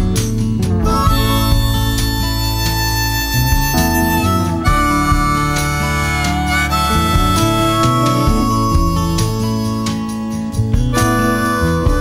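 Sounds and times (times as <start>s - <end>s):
guitar: 0.0s - 12.0s
harmonica playing held notes: 0.7s - 12.0s.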